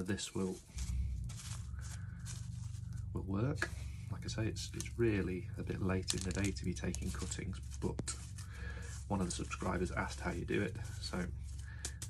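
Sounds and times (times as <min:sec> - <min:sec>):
faint rustles of potting compost: 0:00.0 - 0:12.0
low steady rumble: 0:00.0 - 0:12.0.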